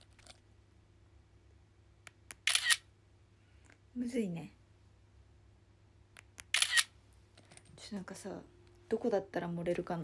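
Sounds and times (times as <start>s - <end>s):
smartphone shutter sound: 2.3s - 2.8s, 6.3s - 6.9s.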